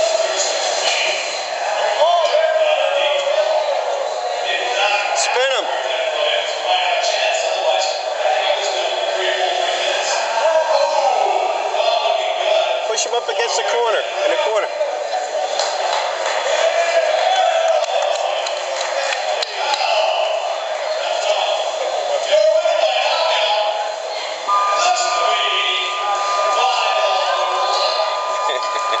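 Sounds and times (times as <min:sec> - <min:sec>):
people talking: 0:00.0 - 0:29.0
two-pitch electronic tone: 0:24.5 - 0:29.0.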